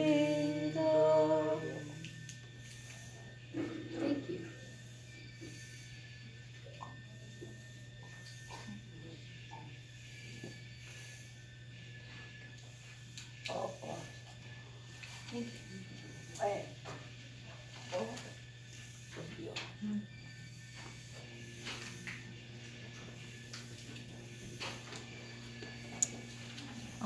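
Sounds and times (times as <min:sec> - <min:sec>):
woman singing a note: 0:00.0 - 0:02.1
low steady hum: 0:00.0 - 0:27.0.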